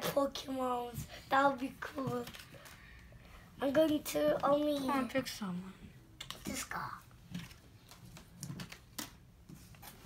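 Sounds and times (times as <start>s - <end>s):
cards clicking and tapping: 7.3s - 10.0s.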